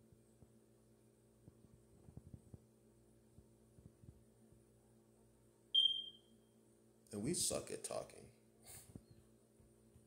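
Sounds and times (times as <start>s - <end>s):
high-pitched electronic beep: 5.8s - 6.2s.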